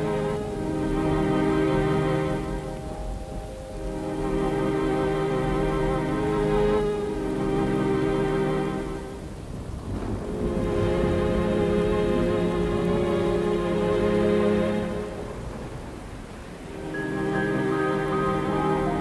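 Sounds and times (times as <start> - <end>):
slow ambient music: 0.0 - 19.0
steady rain: 0.0 - 19.0
thunder rumble: 0.0 - 19.0.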